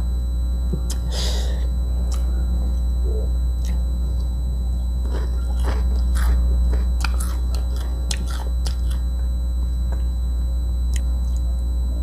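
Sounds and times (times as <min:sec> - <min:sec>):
steady low hum: 0:00.0 - 0:12.0
chewing crunchy peanuts: 0:02.0 - 0:02.8, 0:03.6 - 0:04.3, 0:05.0 - 0:09.3, 0:10.9 - 0:11.4.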